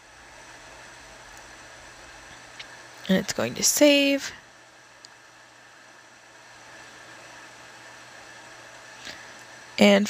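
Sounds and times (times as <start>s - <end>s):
faint low hum: 0.0s - 10.0s
steady background hiss: 0.0s - 10.0s.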